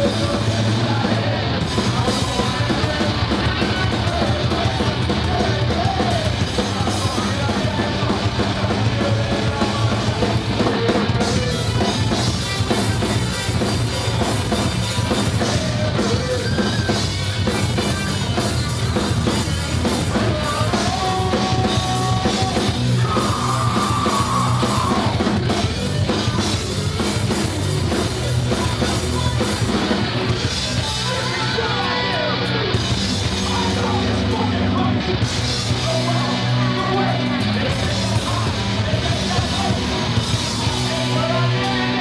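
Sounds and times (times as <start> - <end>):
punk band playing loud: 0.0 - 42.0.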